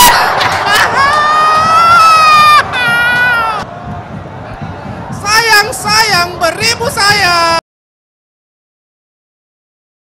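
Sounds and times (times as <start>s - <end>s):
stadium crowd reacting: 0.0s - 7.2s.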